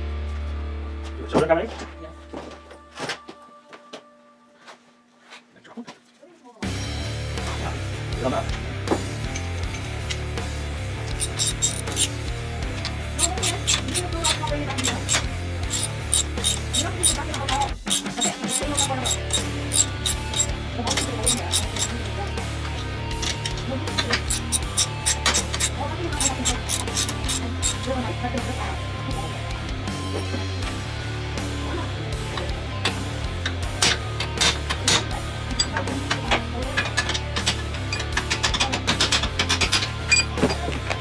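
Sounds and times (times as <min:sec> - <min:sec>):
rock music with guitar and beat: 0:06.6 - 0:41.0.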